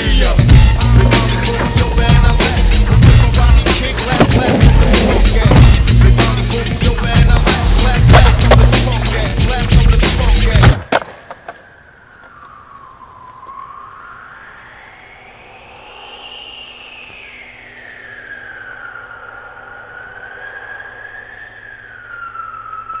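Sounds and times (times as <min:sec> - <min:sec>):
low city hum: 0:00.0 - 0:23.0
emergency vehicle siren wailing: 0:11.5 - 0:15.3, 0:17.1 - 0:23.0.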